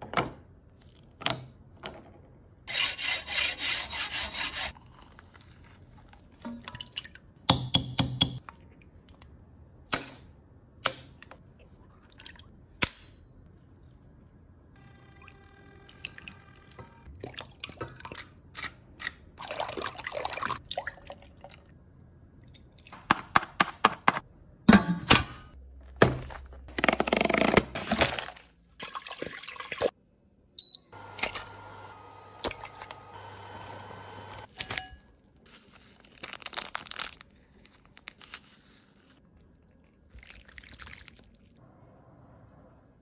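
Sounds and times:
liquid egg pouring and dripping: 39.3s - 41.6s.

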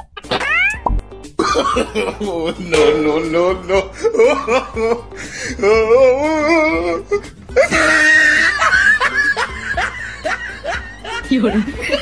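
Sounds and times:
music: 0.0s - 12.0s
person laughing: 1.4s - 12.0s.

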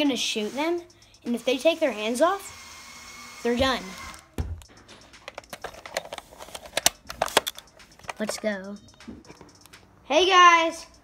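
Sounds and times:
plastic clicks and rattles: 5.2s - 8.5s.

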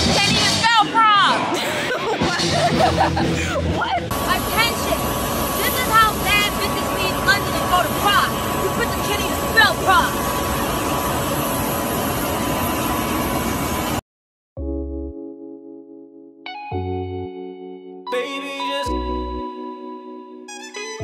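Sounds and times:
woman speaking: 0.0s - 1.4s, 3.8s - 5.0s, 5.6s - 10.2s
jet engine whine: 4.1s - 14.0s.

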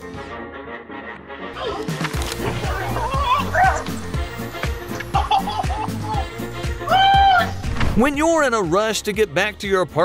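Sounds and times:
background music with steady beat: 0.0s - 10.0s.

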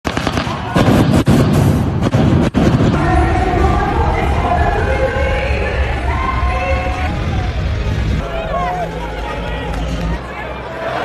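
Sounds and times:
pyrotechnics crackling bangs: 0.0s - 4.7s.

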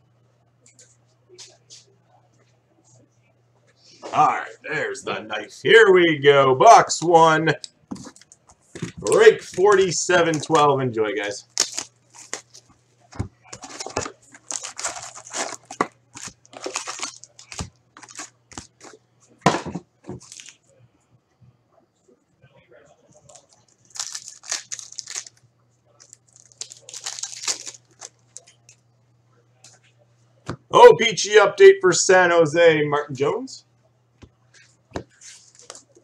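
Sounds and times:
faint low hum: 0.0s - 36.0s
foil pack ripping: 11.2s - 12.6s, 13.5s - 19.0s, 23.3s - 25.4s, 26.0s - 28.2s
plastic wrapping tearing: 11.2s - 12.7s, 13.5s - 19.0s, 20.2s - 20.6s, 23.2s - 28.5s.

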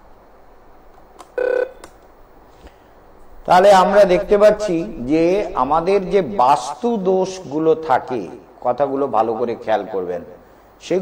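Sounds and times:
short telephone beep: 1.4s - 1.8s.

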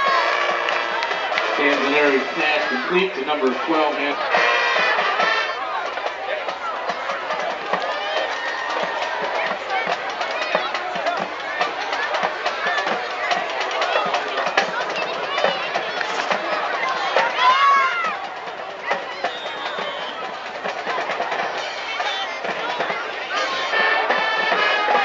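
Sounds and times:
spectators talking and cheering: 0.0s - 25.0s
instrumental music: 18.1s - 25.0s.

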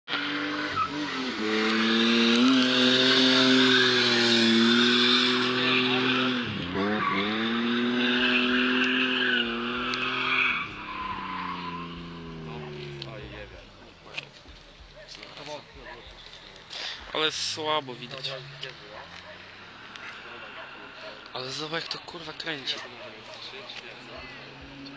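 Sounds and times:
car engine at high revs: 0.1s - 16.3s, 17.0s - 24.9s
tyres squealing: 0.6s - 13.2s.

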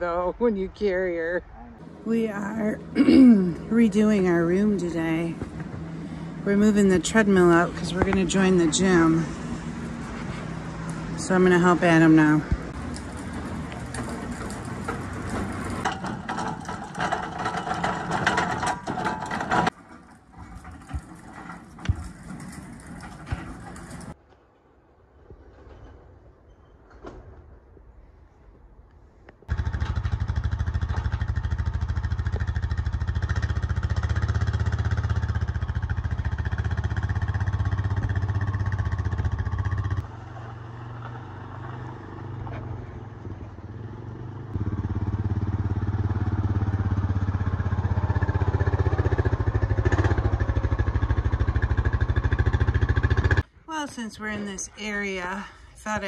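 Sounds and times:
atv engine running: 1.8s - 24.2s, 29.5s - 56.0s.

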